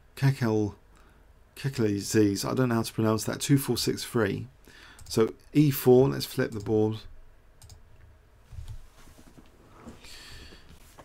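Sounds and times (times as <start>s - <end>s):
computer mouse clicks: 7.6s - 7.8s.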